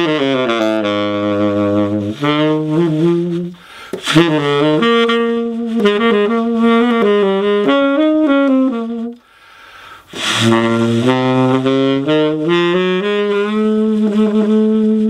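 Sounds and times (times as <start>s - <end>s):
tenor saxophone jazz line: 0.0s - 15.0s.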